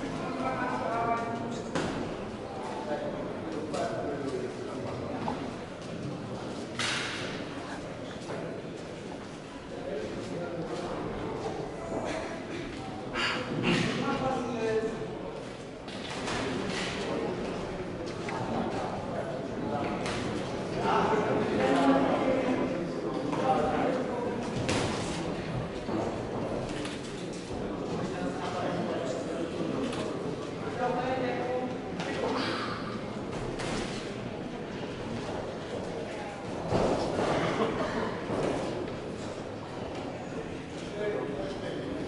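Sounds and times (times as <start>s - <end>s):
crowd noise in echoing hall: 0.0s - 42.0s.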